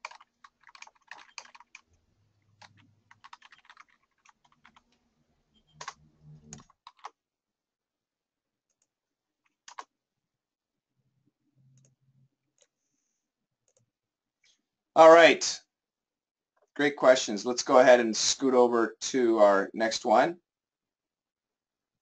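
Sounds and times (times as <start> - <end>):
typing on computer keyboard: 0.0 - 4.9, 5.7 - 7.2, 8.7 - 9.9.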